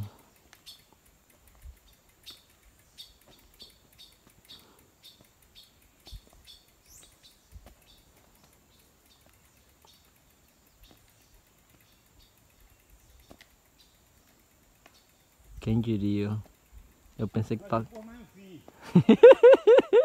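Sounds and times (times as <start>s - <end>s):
faint bird chirping: 0.0s - 18.8s.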